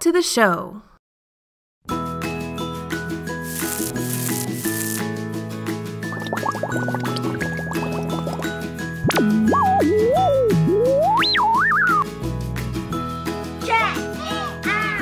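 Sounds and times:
bouncy theme music: 0:02.9 - 0:15.0
quick rising blips: 0:09.0 - 0:12.0.

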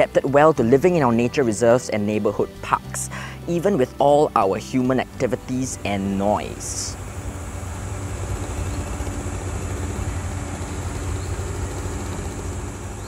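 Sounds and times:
vehicle engine idling: 0:05.0 - 0:13.0.

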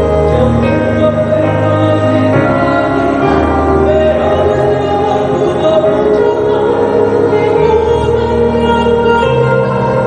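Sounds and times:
sustained accompaniment: 0:00.0 - 0:10.0.

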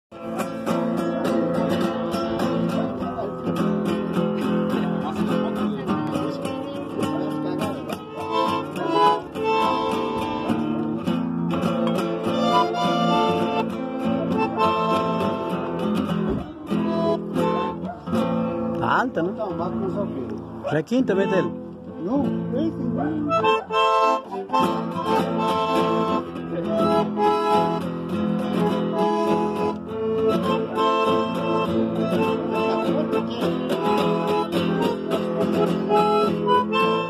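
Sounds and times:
bandoneon melody: 0:00.1 - 0:37.0
nylon-string guitar strumming: 0:00.1 - 0:37.0.

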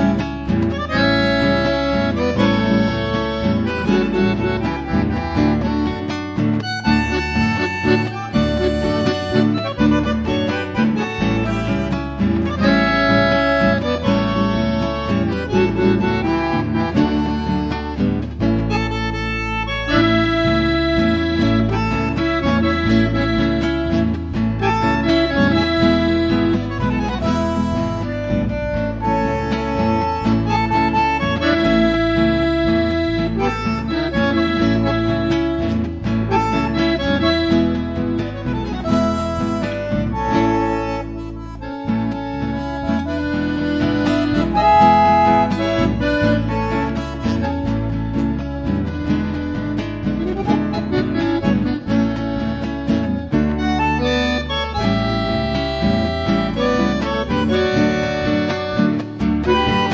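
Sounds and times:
bandoneon: 0:00.0 - 0:59.9
nylon-string guitar: 0:00.0 - 0:59.9.

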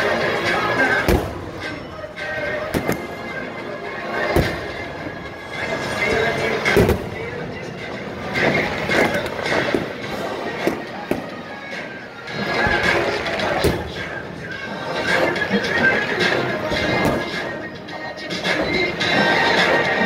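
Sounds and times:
sharp bangs: 0:02.6 - 0:03.3, 0:04.3 - 0:04.9, 0:06.6 - 0:07.3.

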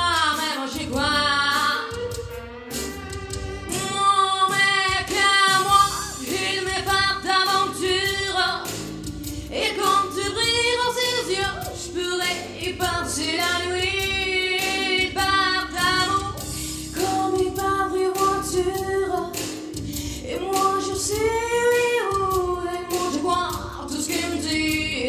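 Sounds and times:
woman singing into microphone: 0:00.0 - 0:02.1, 0:03.7 - 0:08.7, 0:09.5 - 0:16.4, 0:17.0 - 0:19.4, 0:20.2 - 0:25.0
musical accompaniment: 0:00.0 - 0:25.0.

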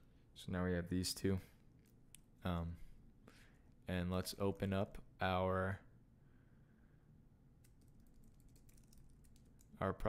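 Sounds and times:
computer keyboard typing: 0:07.6 - 0:09.8.

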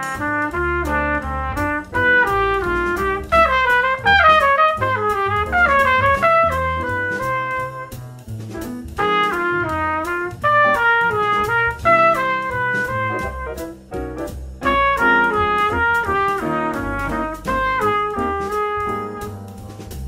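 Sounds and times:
solo trumpet playing: 0:00.0 - 0:08.0, 0:09.0 - 0:13.8, 0:14.6 - 0:19.6.

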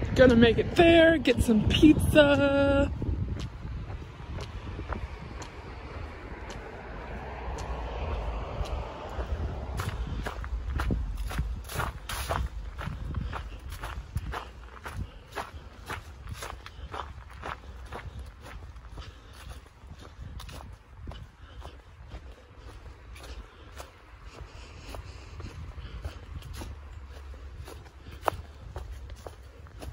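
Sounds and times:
footsteps on leafy dirt trail: 0:00.0 - 0:29.9
low rumble: 0:00.0 - 0:29.9.

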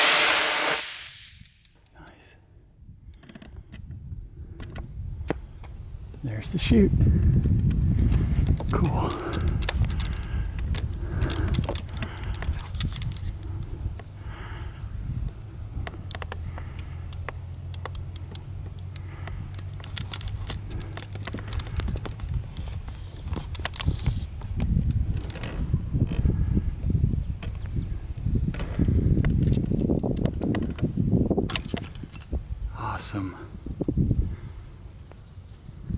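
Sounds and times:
rumbling wind on microphone: 0:02.8 - 0:35.0
small clicks and knocks: 0:03.1 - 0:03.9, 0:07.4 - 0:14.1, 0:15.8 - 0:26.2, 0:28.5 - 0:30.9, 0:31.5 - 0:32.3
camera handling noise: 0:07.6 - 0:13.6, 0:16.1 - 0:25.6.

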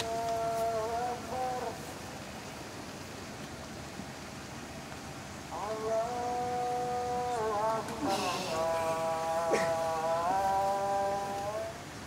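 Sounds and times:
man singing long held notes: 0:00.0 - 0:02.3, 0:05.5 - 0:12.0.

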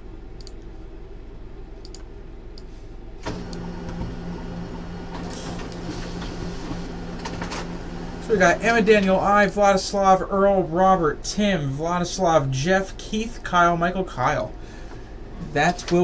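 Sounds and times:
mechanical hum: 0:00.0 - 0:16.0
computer mouse clicks: 0:00.4 - 0:00.7, 0:01.8 - 0:02.7.

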